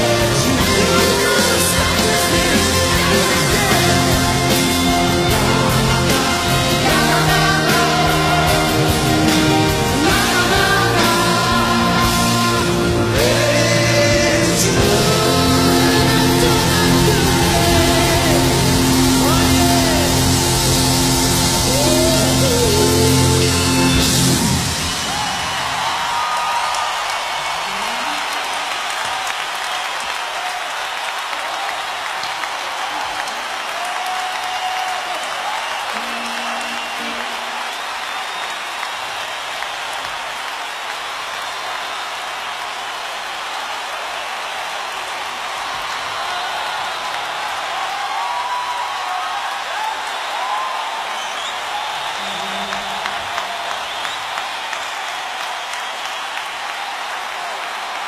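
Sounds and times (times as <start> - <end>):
large audience applauding: 0.0 - 58.0
shouts from audience: 19.1 - 58.0.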